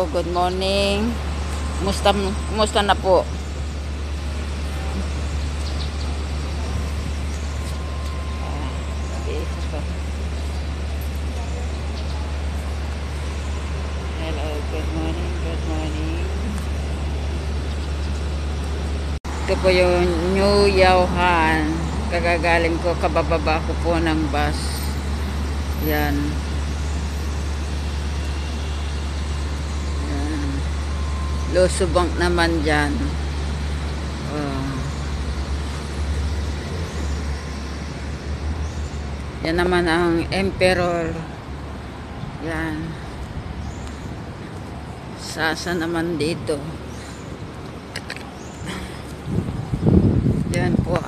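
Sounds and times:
street traffic rumble: 0.0s - 51.0s.

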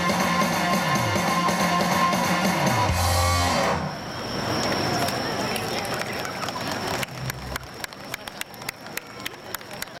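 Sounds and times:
dance music: 0.0s - 3.9s
faint crowd voices: 4.0s - 10.0s
audience clapping: 5.6s - 10.0s.

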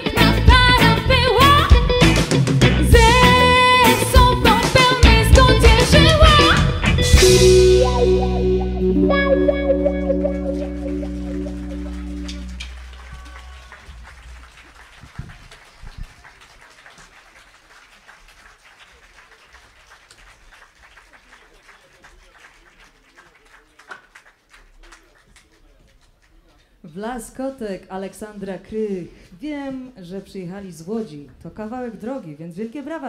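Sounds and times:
band's final chord ringing: 7.2s - 13.8s.

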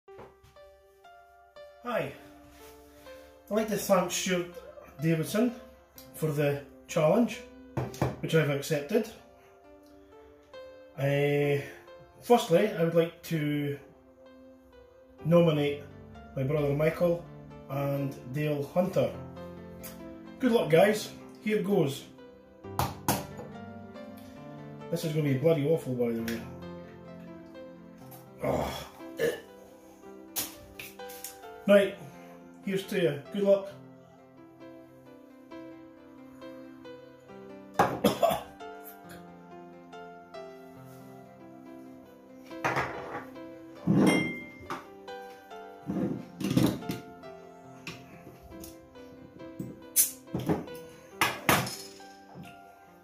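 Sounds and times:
background music sustained tones: 0.1s - 53.0s
man coughing: 29.2s - 29.5s, 38.0s - 38.5s.

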